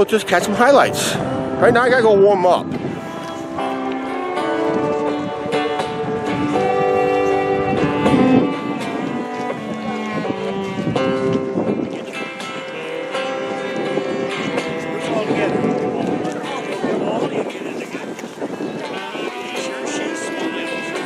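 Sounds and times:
acoustic guitar: 2.6s - 21.0s
saxophone: 2.7s - 15.0s.

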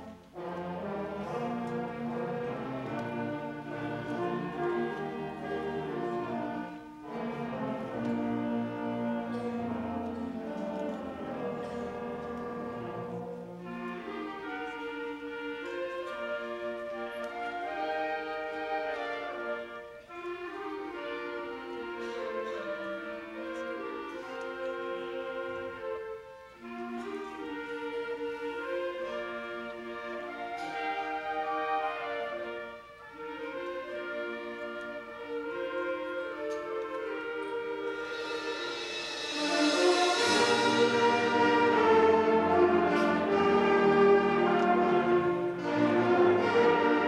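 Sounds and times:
concert band playing: 0.0s - 47.0s.

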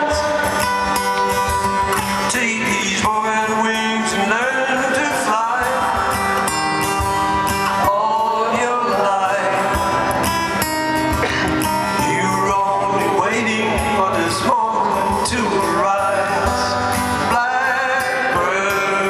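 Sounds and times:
fingerpicked acoustic guitar: 0.0s - 19.0s
man singing: 0.0s - 19.0s.

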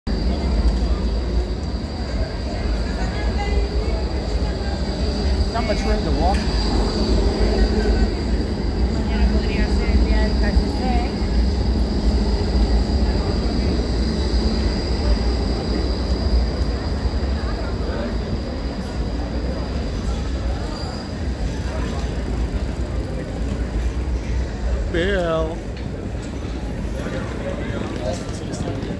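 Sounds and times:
electric tram rumbling on rails: 0.1s - 28.9s
people's voices: 0.1s - 28.9s.

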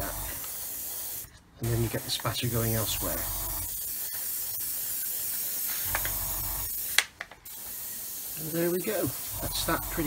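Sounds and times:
airbrush spraying paint: 0.0s - 10.0s.

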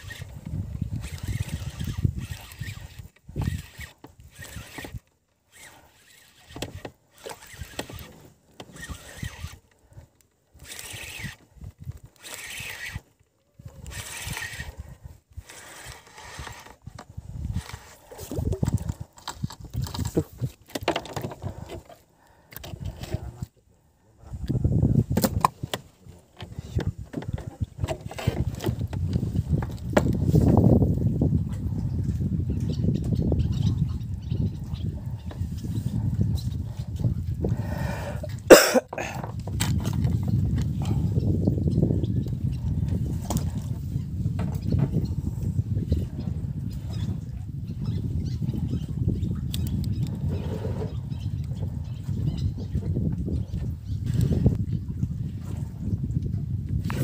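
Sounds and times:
wind rumble on microphone: 0.0s - 57.0s
rod and boat handling knocks: 19.7s - 22.0s.

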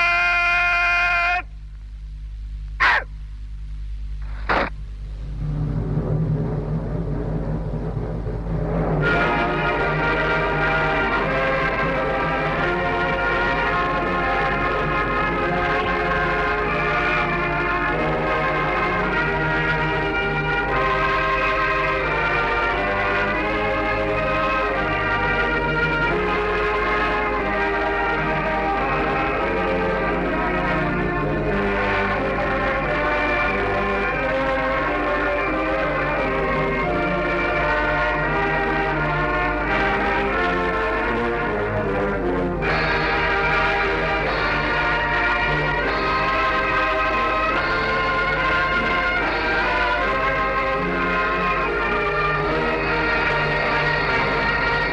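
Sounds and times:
steady low hum: 0.6s - 27.4s
brass band music: 8.6s - 54.9s.

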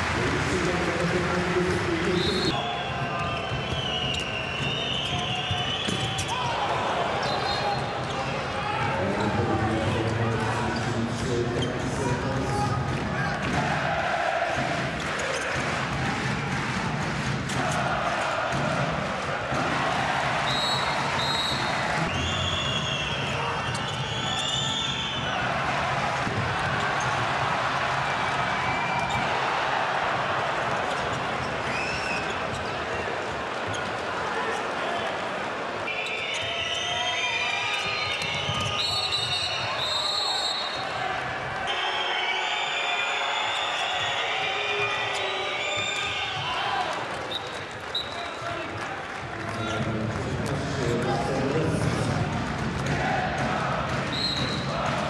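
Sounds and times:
crowd of spectators: 0.0s - 55.0s
handball bouncing on court: 1.7s - 6.6s, 12.4s - 13.8s, 14.5s - 24.5s, 25.4s - 32.7s, 51.8s - 55.0s.

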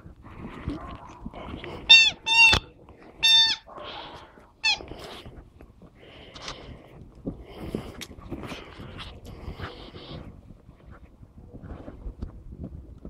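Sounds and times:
rubber chicken toy squawking: 1.9s - 3.7s, 4.6s - 4.9s.

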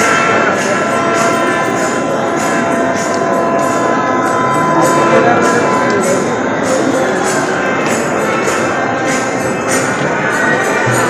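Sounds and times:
crowd: 0.0s - 11.0s
drums and cymbal beats: 0.0s - 11.0s
wind instruments holding notes: 0.0s - 11.0s.

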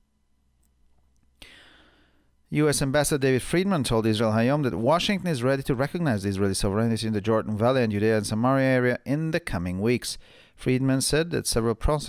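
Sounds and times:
faint low hum: 0.0s - 12.0s
person breathing in: 1.4s - 2.4s, 10.2s - 10.6s.

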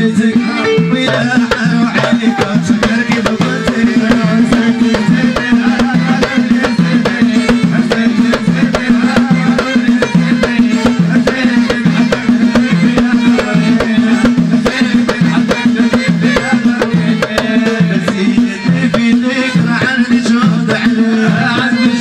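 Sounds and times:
frame drums beating: 0.0s - 22.0s.

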